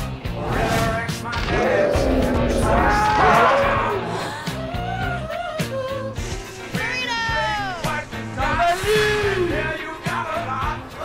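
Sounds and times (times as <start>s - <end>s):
dramatic theme music: 0.0s - 11.0s
low monster roar: 0.3s - 4.4s.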